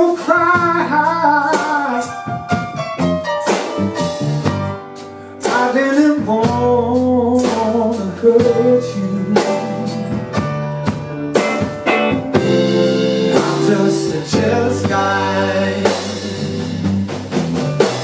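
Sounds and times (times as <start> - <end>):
man singing: 0.0 - 2.3, 5.4 - 10.1, 12.8 - 17.0
bass: 0.0 - 18.0
drums: 0.0 - 18.0
keyboards: 0.0 - 18.0
electric guitar: 8.6 - 18.0.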